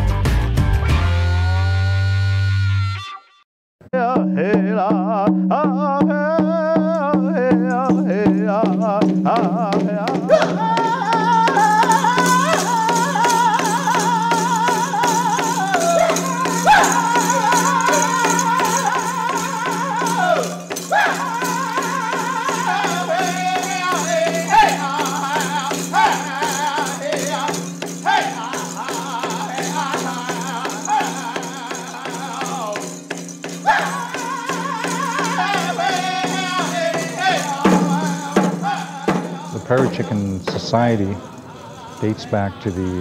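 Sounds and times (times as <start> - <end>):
man singing in high wavering voice: 3.9 - 43.0
fast hand-drum beat: 4.6 - 41.3.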